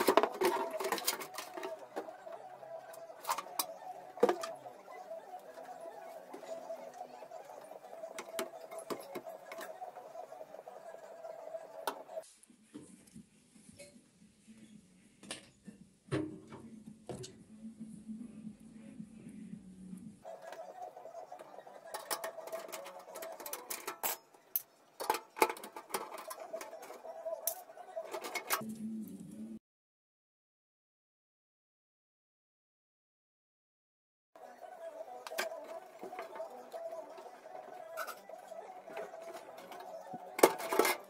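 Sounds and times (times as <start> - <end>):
computer parts clicking: 21.4 - 28.6.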